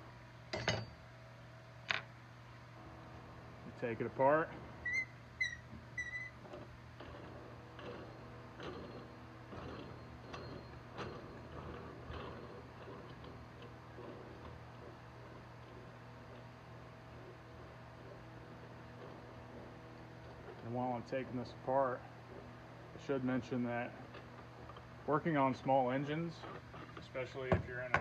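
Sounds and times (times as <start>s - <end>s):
nut squeaking on threaded shaft: 4.8s - 28.0s.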